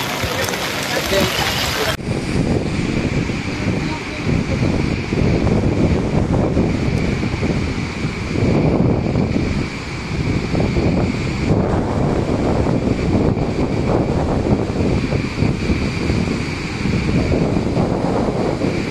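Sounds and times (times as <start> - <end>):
waterfall rushing: 0.0 - 2.0
wind buffeting microphone: 0.0 - 18.9.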